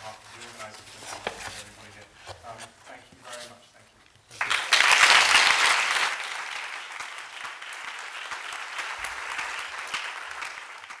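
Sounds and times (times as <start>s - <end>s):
audience applauding: 4.4s - 11.0s.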